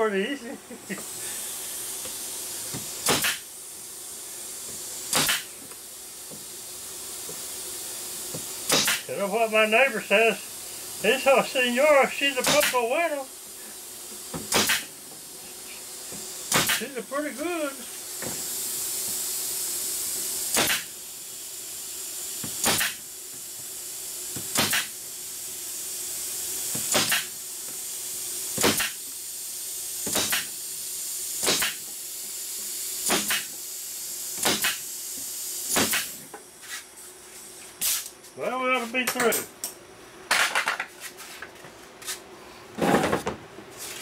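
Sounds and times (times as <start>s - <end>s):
steady air hiss: 0.0s - 42.8s
pneumatic nailer firing: 0.9s - 9.5s, 10.7s - 36.8s, 37.8s - 38.2s, 40.3s - 40.9s.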